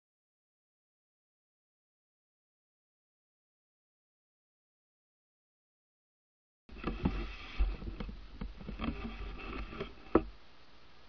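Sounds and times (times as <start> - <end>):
faint steady hiss: 6.7 - 11.0
camera handling knocks and rubbing: 6.8 - 10.3.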